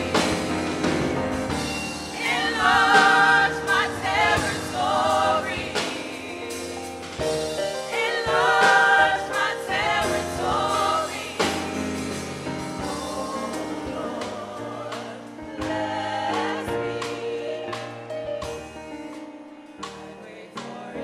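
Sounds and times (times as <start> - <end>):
women's choir singing in harmony: 0.0 - 18.2, 19.8 - 21.0.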